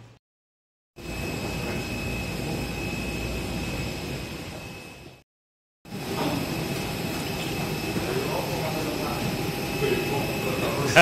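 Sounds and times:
jet turbine high whine: 1.0s - 5.2s, 5.9s - 11.0s.

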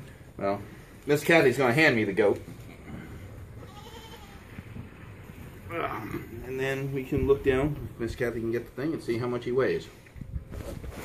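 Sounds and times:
goat bleating: 3.6s - 4.7s
soft handling noise: 8.6s - 11.0s.

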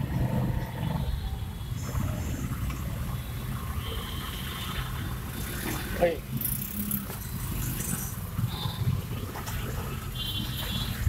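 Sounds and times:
traffic engine rumble: 0.0s - 11.0s.

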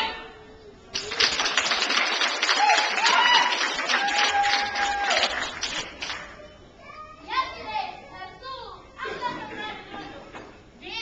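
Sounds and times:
crowd noise: 0.0s - 11.0s
hand claps: 0.9s - 6.3s.

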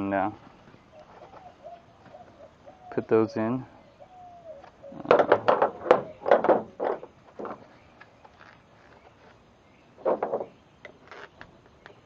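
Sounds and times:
dove cooing: 0.9s - 7.6s.

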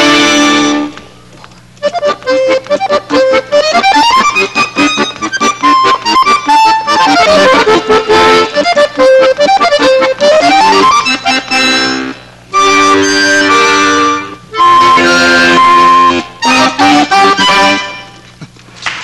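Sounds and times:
accordion duet: 0.0s - 18.5s.

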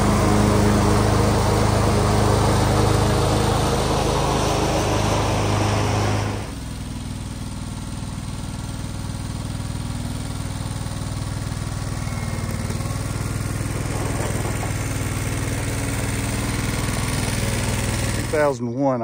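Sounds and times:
garden tractor engine running: 0.0s - 19.0s.

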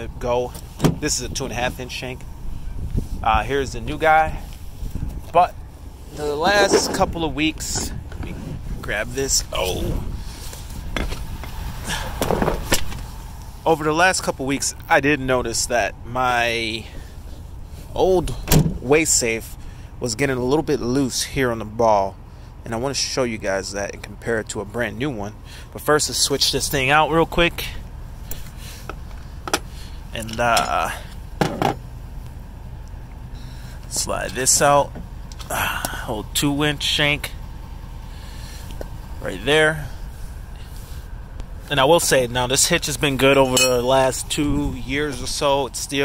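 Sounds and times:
low steady rumble: 0.0s - 46.0s
sharp metal clinks: 43.5s - 44.0s.

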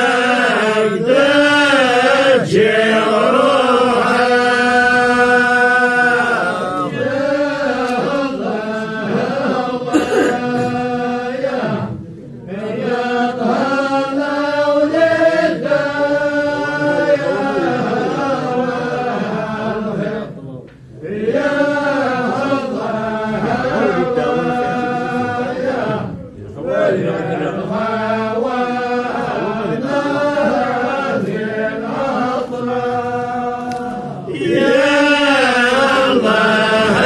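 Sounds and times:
voices chanting slow melody: 0.0s - 37.0s.

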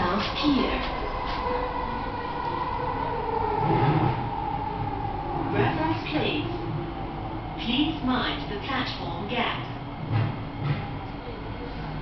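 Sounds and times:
high train whine: 0.0s - 12.0s
train running gear rumble: 0.0s - 12.0s.

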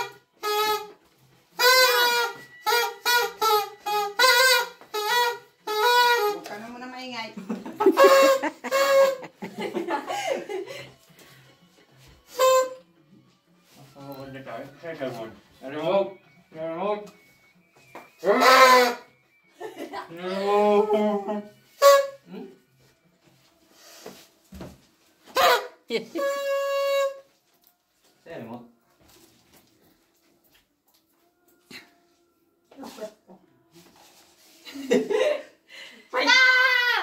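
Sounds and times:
party horn blasts: 0.0s - 6.8s, 7.8s - 9.4s, 12.2s - 12.9s, 18.2s - 19.4s, 21.6s - 22.4s, 25.2s - 27.4s
laughter: 7.4s - 11.0s, 19.6s - 20.2s, 34.6s - 35.6s.

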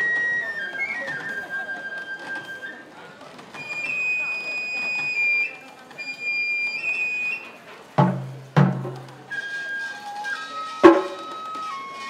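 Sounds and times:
bamboo flute high phrases: 0.0s - 7.6s, 9.1s - 12.0s
taiko drum strikes: 8.0s - 9.2s, 10.8s - 11.3s.

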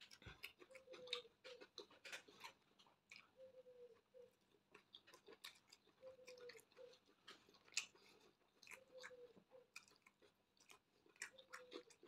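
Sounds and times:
chewing bread mouth clicks: 0.0s - 3.4s, 4.4s - 12.0s.

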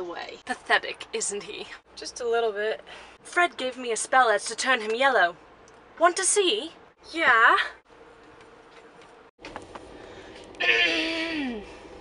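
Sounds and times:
train compartment hum: 5.9s - 12.0s.

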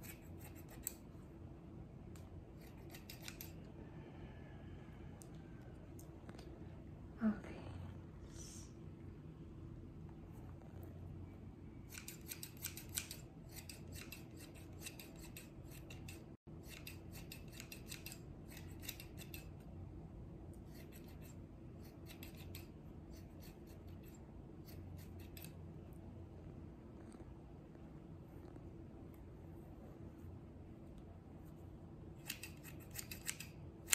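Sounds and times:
scissors snipping hair: 0.0s - 1.1s, 2.2s - 3.6s, 11.8s - 19.7s, 20.5s - 25.6s, 32.2s - 33.9s
faint steady hum: 0.0s - 33.9s.

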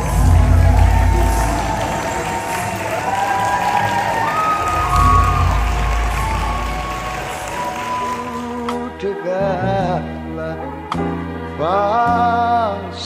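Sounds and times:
audience applauding and cheering: 0.0s - 9.2s
background music: 0.0s - 13.0s.

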